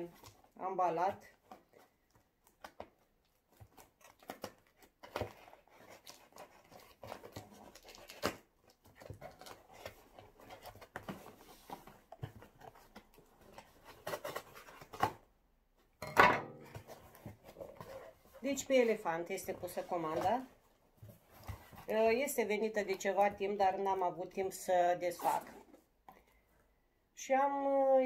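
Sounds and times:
cardboard flap ripping: 0:03.6 - 0:11.6, 0:12.7 - 0:15.2.

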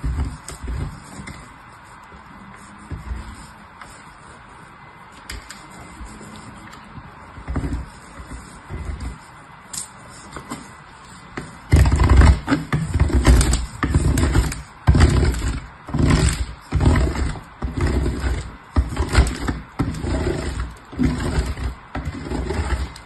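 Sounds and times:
soap rasping on metal grater: 0:11.4 - 0:23.0.

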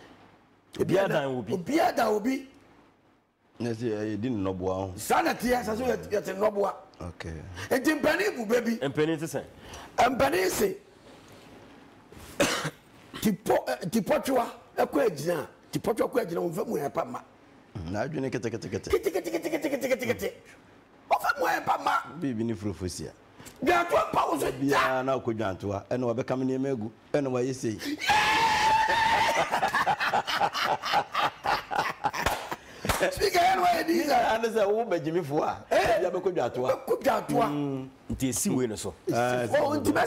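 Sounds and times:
short cough: 0:12.4 - 0:13.3
man speaking: 0:33.0 - 0:40.0.

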